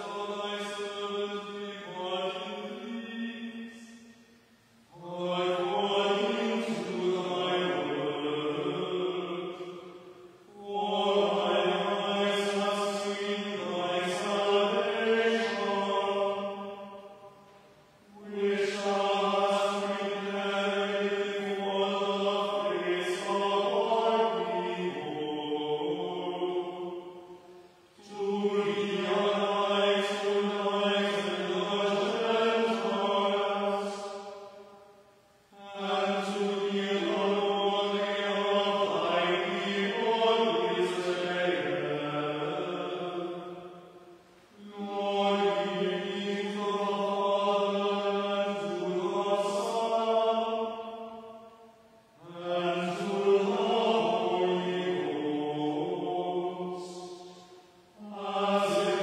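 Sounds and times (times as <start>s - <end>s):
group chanting in echoing church: 0.0s - 59.0s.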